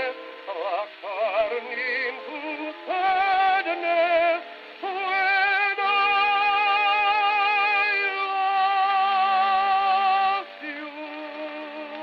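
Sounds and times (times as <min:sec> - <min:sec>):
old gramophone record music: 0:00.0 - 0:12.0.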